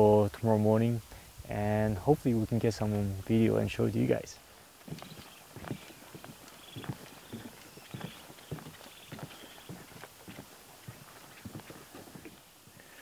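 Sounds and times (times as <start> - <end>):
footsteps on wooden dock: 4.8 - 13.0.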